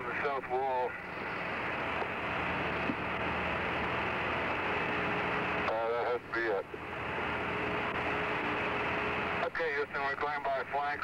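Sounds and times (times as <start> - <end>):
voice over radio: 0.0 - 1.0, 5.7 - 6.7, 9.4 - 11.0
faint steady hum: 0.0 - 11.0
radio static hiss: 0.0 - 11.0.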